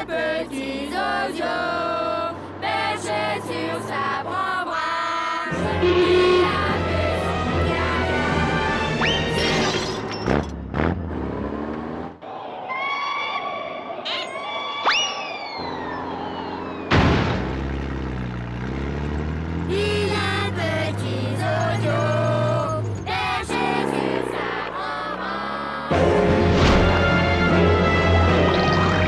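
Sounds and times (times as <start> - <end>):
cartoon background music: 5.5 - 10.4, 25.9 - 29.0
rising whistle-like glide: 14.1 - 16.9
sudden loud hit: 16.9 - 17.5.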